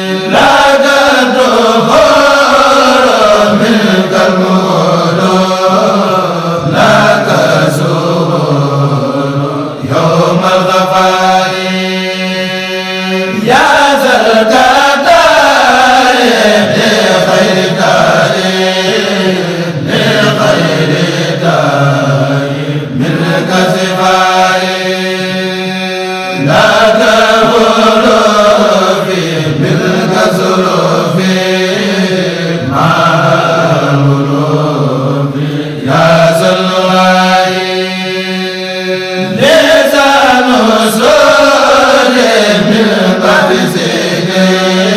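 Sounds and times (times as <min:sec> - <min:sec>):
voices chanting a melody: 0:00.0 - 0:44.9.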